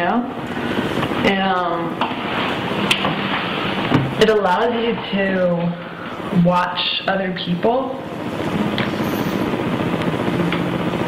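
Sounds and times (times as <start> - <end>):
steady rushing noise: 8.0 - 11.0.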